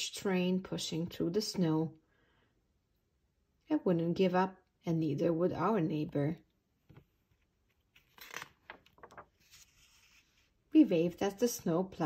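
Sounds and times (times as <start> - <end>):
page turning paper rustles: 6.9 - 10.6.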